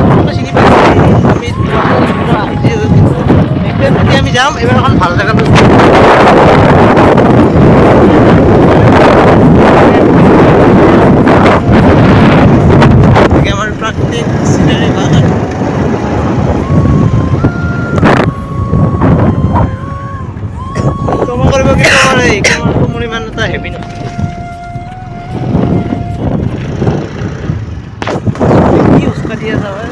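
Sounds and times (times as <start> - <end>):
vehicle running: 0.0 - 29.9
wind rushing over microphone: 0.0 - 29.9
held tones stepping in pitch: 14.8 - 27.2.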